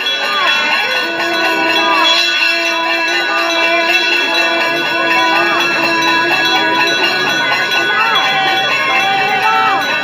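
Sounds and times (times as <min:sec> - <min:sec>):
temple bells ringing: 0:00.0 - 0:10.0
steady held tones: 0:00.2 - 0:10.0.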